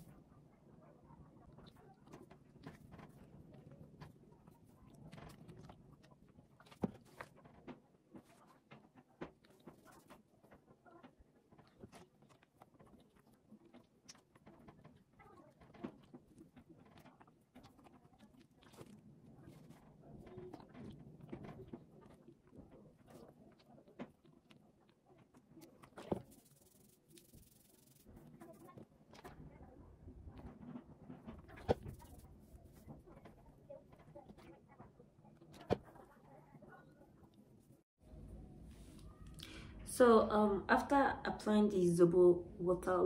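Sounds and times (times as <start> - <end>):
rustling of wet hair and cloth: 0.0 - 39.5.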